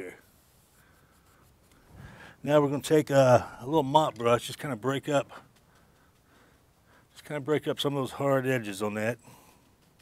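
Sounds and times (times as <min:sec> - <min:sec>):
paintbrush scratching on canvas: 0:00.2 - 0:02.0
person speaking: 0:02.4 - 0:05.6.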